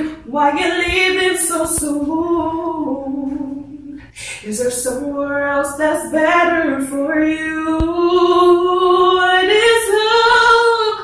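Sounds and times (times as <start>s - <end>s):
woman singing unaccompanied: 0.0s - 11.0s.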